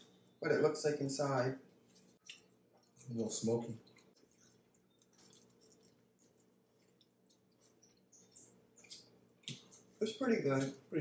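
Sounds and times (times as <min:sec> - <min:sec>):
people chewing food: 0:01.6 - 0:11.0.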